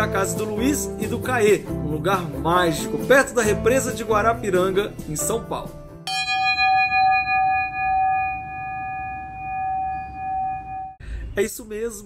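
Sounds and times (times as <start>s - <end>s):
metal bell ringing: 6.1s - 11.0s.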